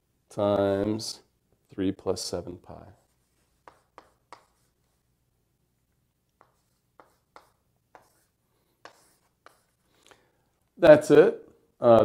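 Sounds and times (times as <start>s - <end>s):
writing tool tapping and stroking: 3.0s - 5.0s, 6.3s - 9.9s.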